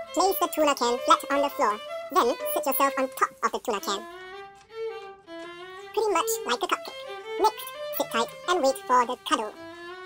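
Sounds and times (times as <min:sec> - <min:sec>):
violin slow held notes: 0:00.0 - 0:10.0.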